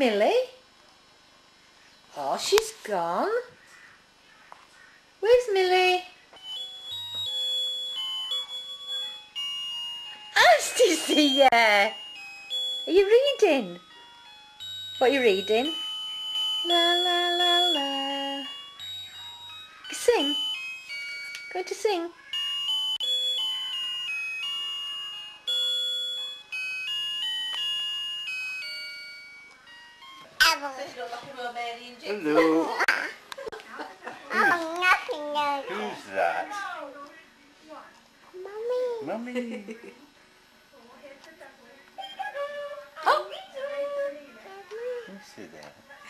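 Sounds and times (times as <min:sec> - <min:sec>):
thin beeping electronic melody: 0:06.4 - 0:32.8.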